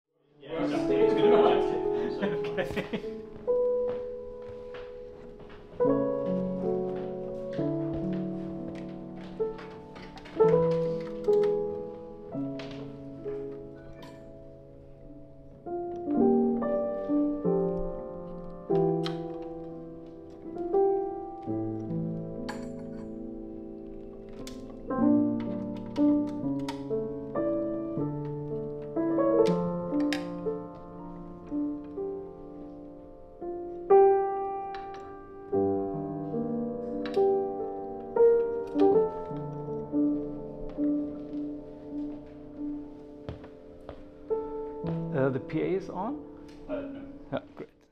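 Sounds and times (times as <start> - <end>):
grand piano chords: 0.2 - 47.9.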